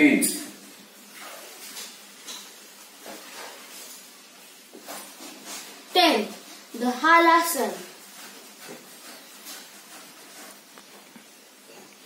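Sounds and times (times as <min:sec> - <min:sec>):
faint room hiss: 0:00.0 - 0:12.0
soft rustles on yoga mat: 0:00.7 - 0:12.0.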